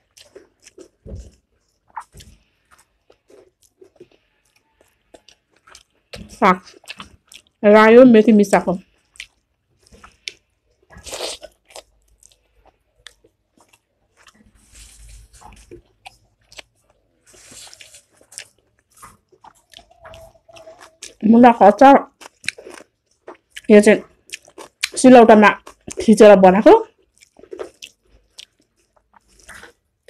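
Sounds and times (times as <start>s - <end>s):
person chewing food: 0.0s - 7.6s, 8.9s - 21.3s, 22.0s - 25.0s, 25.6s - 26.0s, 26.9s - 30.0s.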